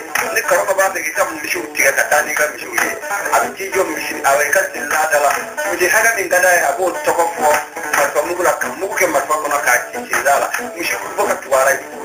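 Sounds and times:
instrumental backing music: 0:00.0 - 0:12.0
man singing: 0:00.0 - 0:12.0.

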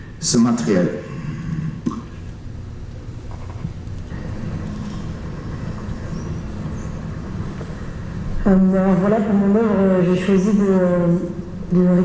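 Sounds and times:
distant traffic over speakers: 0:00.0 - 0:12.0.

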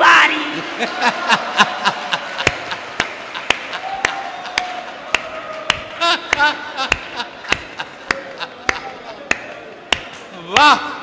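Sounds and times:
sharp taps: 0:05.2 - 0:10.2.

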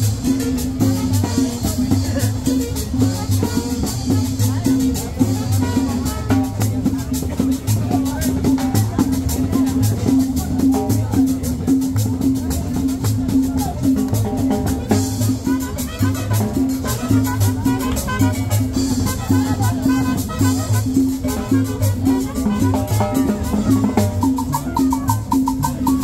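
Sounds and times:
latin dance band music: 0:00.0 - 0:26.0.

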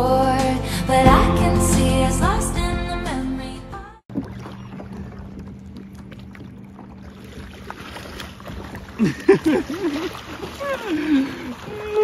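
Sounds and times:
music: 0:00.0 - 0:04.0
water splashing against kayak hull: 0:04.1 - 0:12.0.

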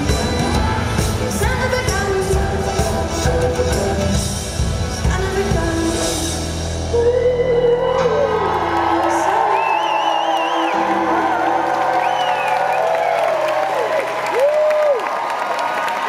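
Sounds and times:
crowd cheering and applauding: 0:07.6 - 0:16.0
high whoops and shouts: 0:07.9 - 0:16.0.

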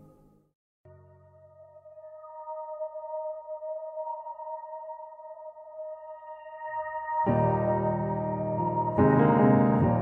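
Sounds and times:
soft sustained instrumental chord: 0:00.9 - 0:10.0.

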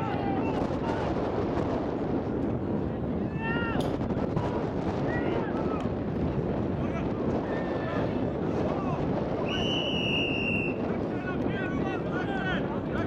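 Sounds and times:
steady rushing background noise: 0:00.0 - 0:13.0.

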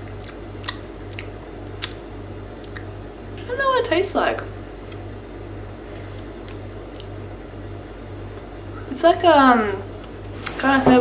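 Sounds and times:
low steady hum: 0:00.0 - 0:11.0
drinking and swallowing clicks: 0:02.6 - 0:02.9, 0:06.1 - 0:07.2.

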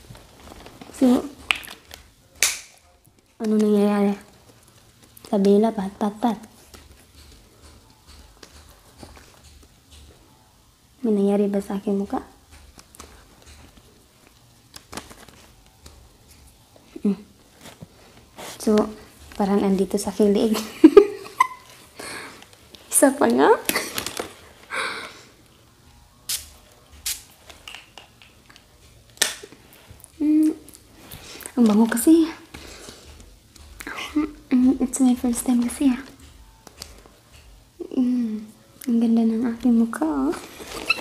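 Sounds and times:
woman speaking: 0:00.9 - 0:01.4, 0:03.4 - 0:04.3, 0:05.3 - 0:06.5, 0:11.0 - 0:12.3, 0:18.6 - 0:20.9, 0:22.9 - 0:23.7, 0:31.6 - 0:32.5, 0:33.8 - 0:36.2, 0:37.8 - 0:40.5
woman's high squeaky giggle: 0:20.9 - 0:21.8
spray bottle hiss: 0:26.3 - 0:27.8.

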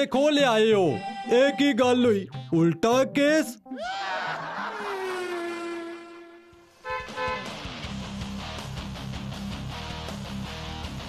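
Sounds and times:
cartoon car horn toots: 0:05.0 - 0:07.6.

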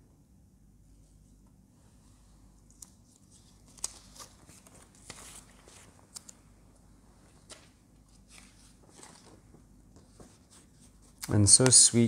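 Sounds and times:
paper rustle: 0:02.7 - 0:06.4, 0:07.2 - 0:11.9.

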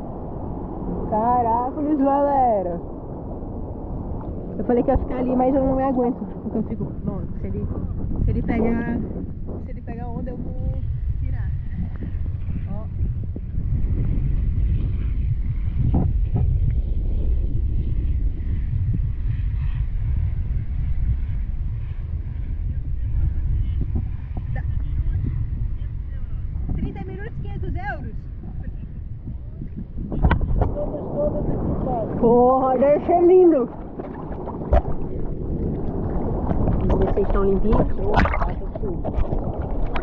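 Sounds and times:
sea water rumble: 0:00.0 - 0:40.0
wind buffeting camera: 0:00.0 - 0:40.0.

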